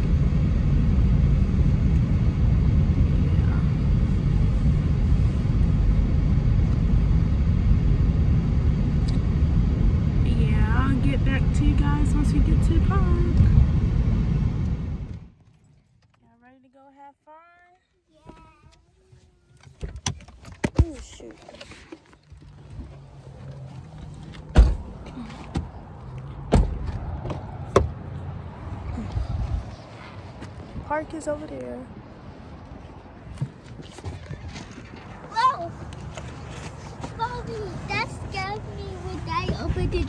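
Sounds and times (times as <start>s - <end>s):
low rumble: 0.0s - 15.4s
road and engine rumble in car: 0.0s - 16.4s, 18.2s - 40.0s
footsteps on pavement: 29.2s - 30.9s, 32.6s - 37.8s.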